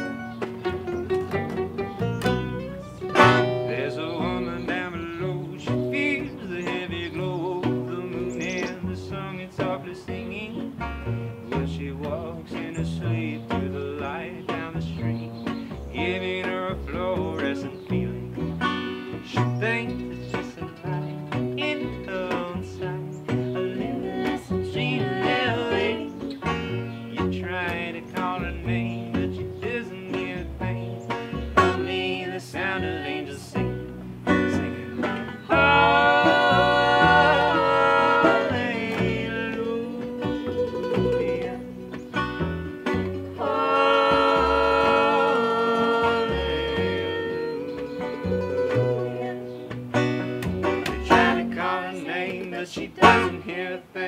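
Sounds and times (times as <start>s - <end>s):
held melody lines: 0.0s - 54.0s
picked banjo: 0.0s - 54.0s
upright bass: 0.0s - 54.0s.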